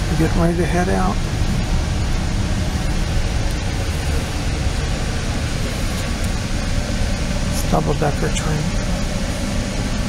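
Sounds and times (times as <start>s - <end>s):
train interior rumble and hiss: 0.0s - 10.0s.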